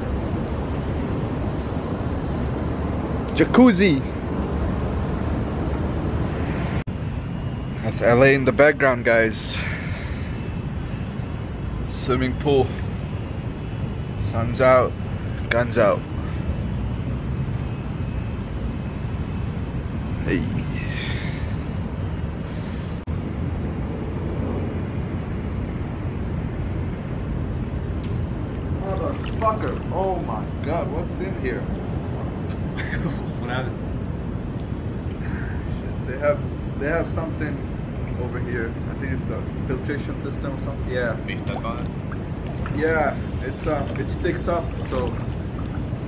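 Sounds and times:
distant city traffic: 0.0 - 46.0
low outdoor rumble: 0.0 - 46.0
wind on microphone: 19.8 - 30.6, 41.0 - 46.0.

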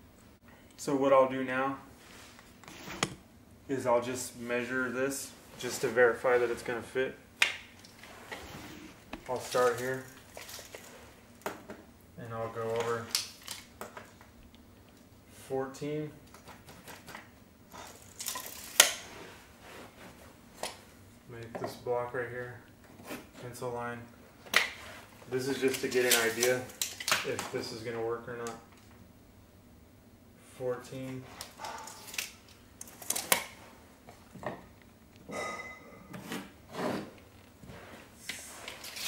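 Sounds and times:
brief metallic ring: 35.3 - 36.1.

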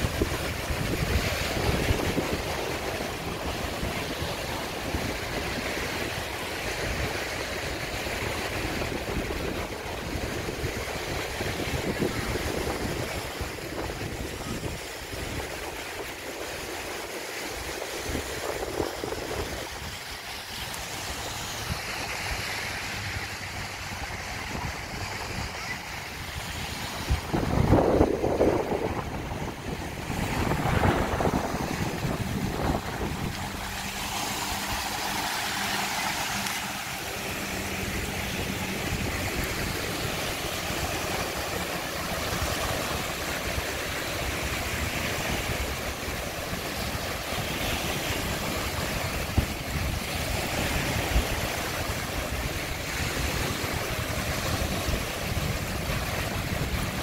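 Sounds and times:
waves washing up beach: 0.0 - 57.0
wind buffeting microphone: 0.0 - 57.0.

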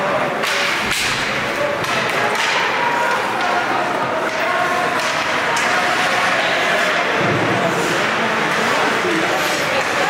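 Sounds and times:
hockey knocks on rink boards: 0.4 - 6.3.

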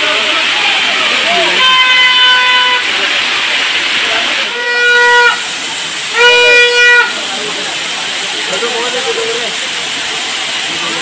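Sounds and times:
waterfall rushing: 0.0 - 11.0
horn-like toot: 1.4 - 2.9, 4.4 - 5.5, 6.1 - 7.2.

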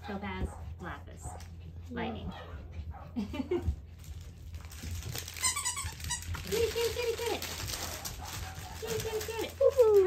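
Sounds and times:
squeaky dog toy squeaks: 5.2 - 6.8.

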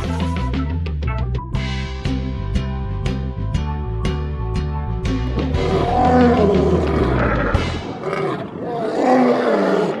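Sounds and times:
animal roaring: 5.4 - 10.0.

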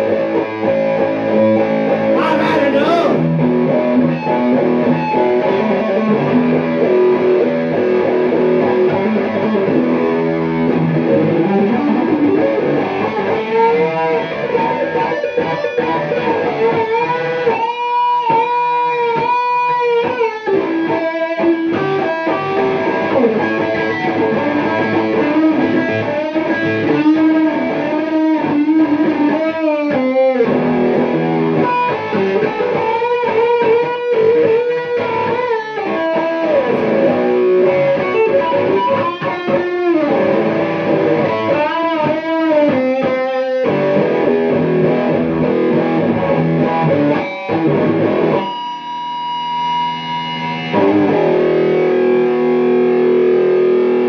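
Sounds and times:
electric guitar blues solo: 0.0 - 54.0.

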